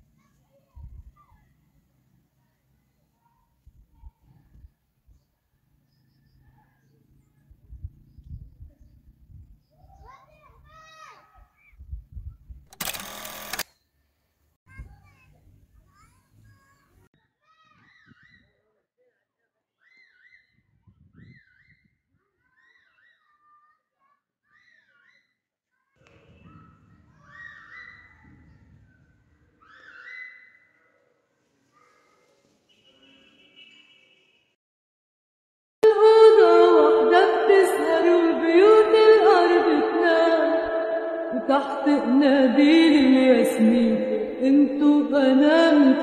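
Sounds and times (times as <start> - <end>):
distant children calling out: 0.0 - 4.6, 25.9 - 33.2
animal whistled call: 29.6 - 30.7.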